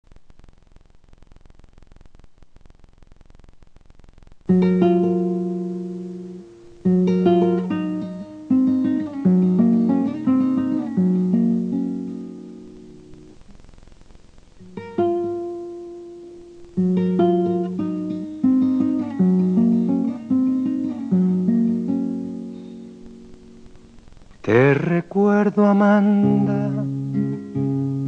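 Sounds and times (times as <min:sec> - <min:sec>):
acoustic guitar playing: 0:04.5 - 0:13.5, 0:14.6 - 0:28.0.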